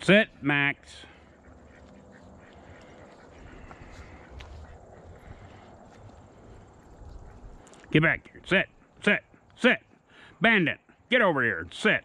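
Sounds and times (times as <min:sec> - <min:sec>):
ducks quacking faintly: 0:00.0 - 0:12.0.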